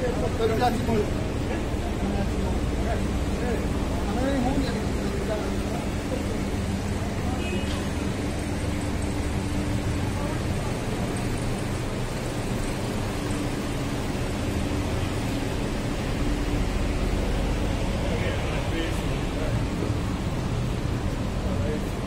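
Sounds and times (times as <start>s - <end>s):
road noise: 0.0s - 22.0s
vehicle engines humming: 0.0s - 22.0s.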